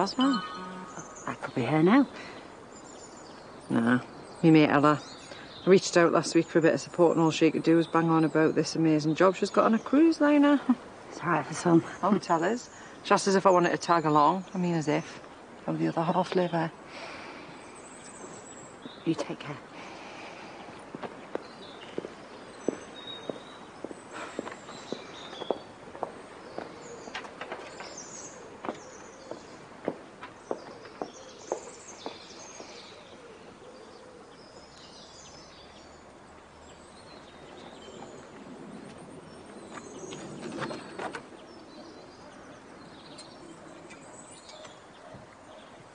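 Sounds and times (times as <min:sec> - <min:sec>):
birds chirping: 0:00.0 - 0:45.9.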